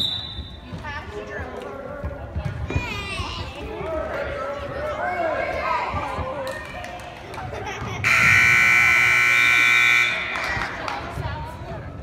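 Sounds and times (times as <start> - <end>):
scoreboard buzzer: 8.0 - 10.5.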